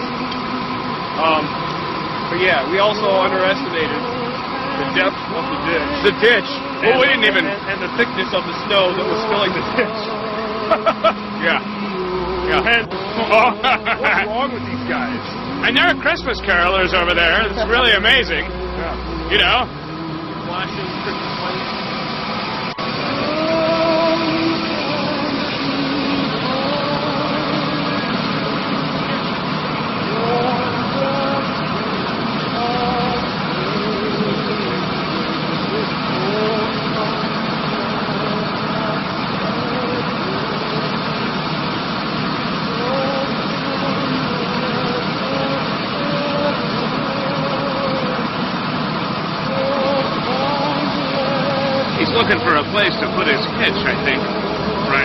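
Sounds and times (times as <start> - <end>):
indistinct voices talking: 0.0 - 55.0
large vehicle engine idling: 0.0 - 55.0.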